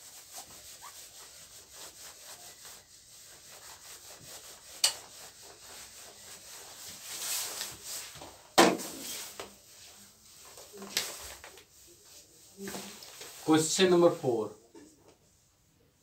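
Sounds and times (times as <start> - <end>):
eraser rubbing on whiteboard: 0.0 - 8.2.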